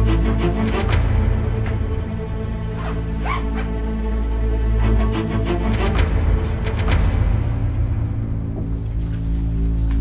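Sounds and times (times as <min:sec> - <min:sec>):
suspenseful background score: 0:00.0 - 0:10.0
zip-like rasp of bag: 0:02.8 - 0:03.7.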